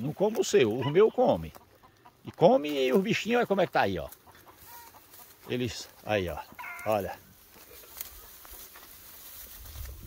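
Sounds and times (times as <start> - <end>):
dry grass rustling: 0.0 - 10.0.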